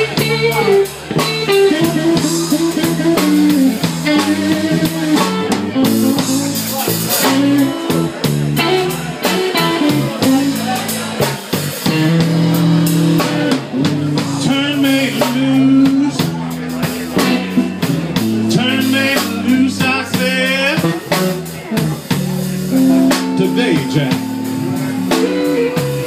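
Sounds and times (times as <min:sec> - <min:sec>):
blues band playing: 0:00.0 - 0:26.0
lead electric guitar bent notes: 0:00.0 - 0:26.0.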